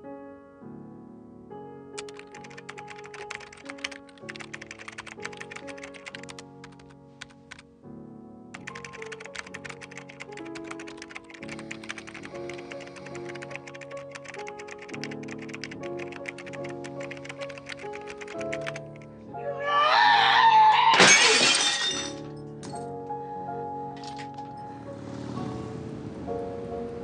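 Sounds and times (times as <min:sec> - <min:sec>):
rapid keyboard typing: 0:02.0 - 0:07.6, 0:08.5 - 0:19.1
music with sustained chords: 0:22.3 - 0:27.0.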